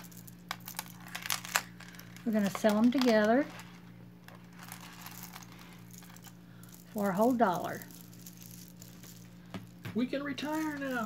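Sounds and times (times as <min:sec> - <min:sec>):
bead necklaces clicking and rustling: 0:00.0 - 0:11.0
low steady hum: 0:00.0 - 0:11.0.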